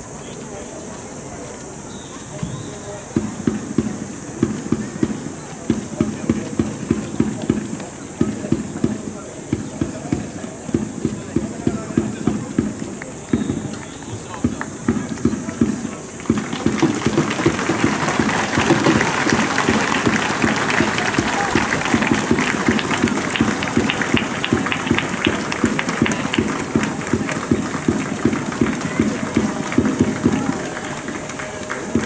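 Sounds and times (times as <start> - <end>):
crowd voices: 0.0 - 32.0
spectators clapping: 11.0 - 32.0.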